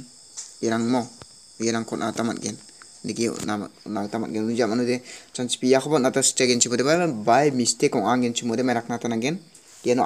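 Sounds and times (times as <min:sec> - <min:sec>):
high-pitched chirring: 0:00.0 - 0:10.0
man speaking: 0:00.6 - 0:10.0.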